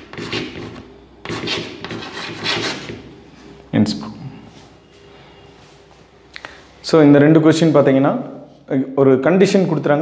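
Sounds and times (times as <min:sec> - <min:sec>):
chalk rasping on blackboard: 0:00.0 - 0:03.1.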